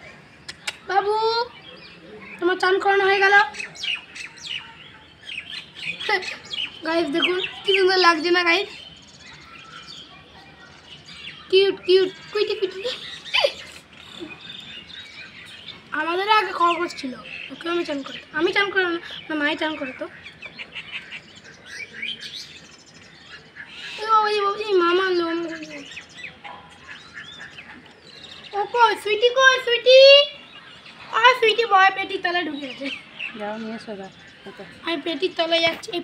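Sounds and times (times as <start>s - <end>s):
birds chirping: 0.0s - 36.0s.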